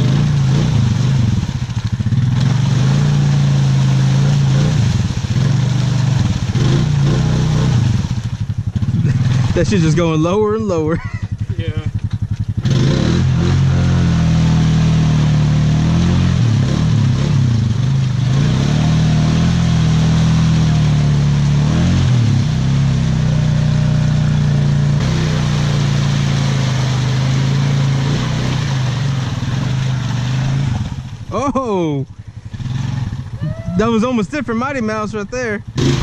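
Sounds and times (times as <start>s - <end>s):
quad bike engine revving: 0.0s - 36.0s.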